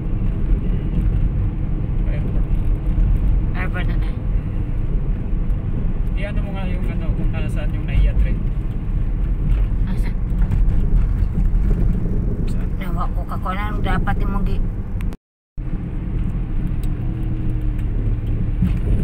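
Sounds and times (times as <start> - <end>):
tyres and engine rumble: 0.0 - 19.0.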